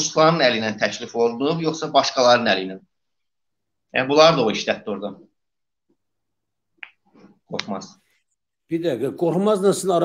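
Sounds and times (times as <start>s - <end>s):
man talking over video call: 0.0s - 5.5s, 7.2s - 10.0s.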